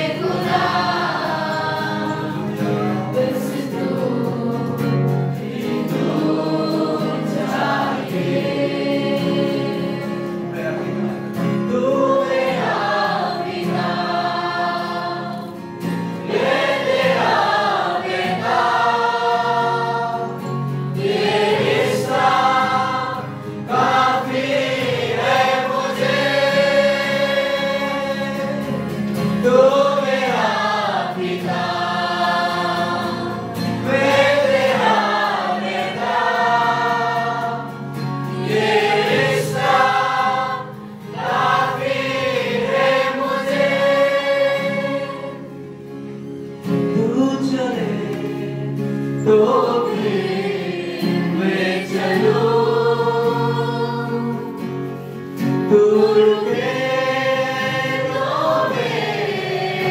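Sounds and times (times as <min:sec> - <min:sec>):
choir singing slow worship song: 0:00.0 - 0:59.9
instrumental backing: 0:00.0 - 0:59.9.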